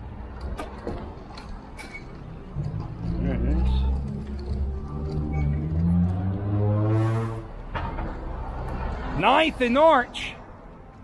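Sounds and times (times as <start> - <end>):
vehicle engine: 0.0 - 9.2
street traffic: 0.0 - 11.0.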